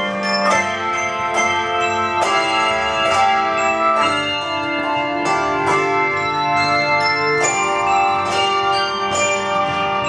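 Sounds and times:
handbells ringing chords: 0:00.0 - 0:10.0.

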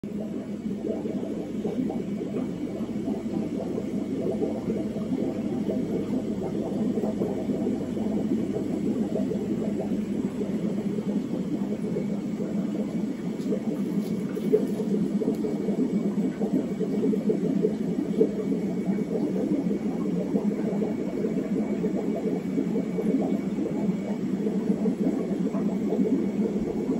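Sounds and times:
aquarium air pumps humming: 0:00.0 - 0:26.9
sponge filters bubbling: 0:00.0 - 0:26.9.

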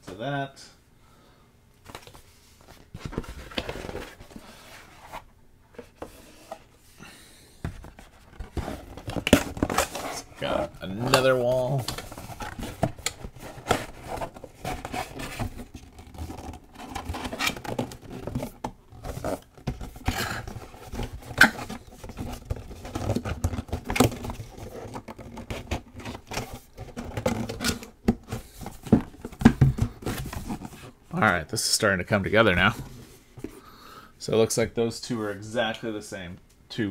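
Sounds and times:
cardboard scraping and tapping: 0:07.6 - 0:10.2.

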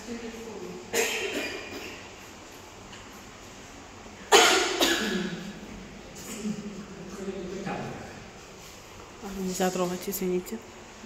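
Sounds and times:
person coughing: 0:00.9 - 0:02.1, 0:04.3 - 0:05.6.

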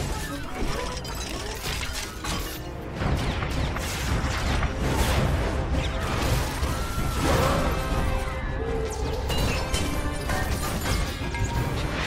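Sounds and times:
debris crackling and shattering: 0:00.0 - 0:12.0
film music score: 0:00.0 - 0:12.0.

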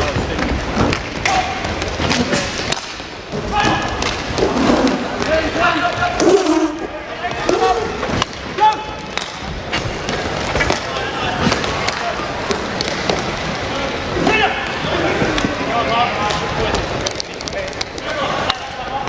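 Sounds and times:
hockey sticks clacking on puck: 0:00.0 - 0:06.5, 0:07.3 - 0:13.5, 0:14.2 - 0:19.0
skate wheels rolling: 0:00.0 - 0:19.0.

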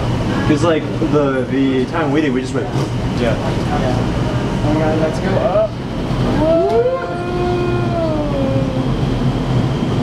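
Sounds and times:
wind tunnel air rush: 0:04.0 - 0:10.0
people cheering: 0:06.4 - 0:08.9.

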